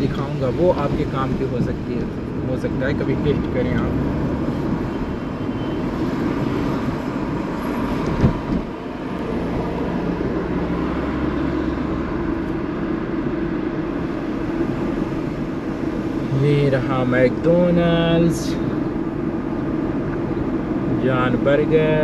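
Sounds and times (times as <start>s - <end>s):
car engine and road noise: 0.0s - 22.0s.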